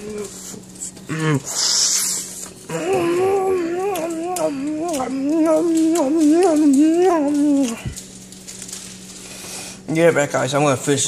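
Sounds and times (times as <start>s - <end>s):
steady low hum: 0.0s - 11.0s
faint light crackling: 1.6s - 9.9s.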